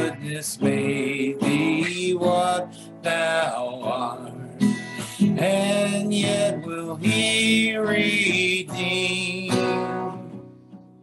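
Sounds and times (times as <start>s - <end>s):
man singing a hymn: 0.0s - 10.3s
acoustic guitar strumming: 0.0s - 11.0s.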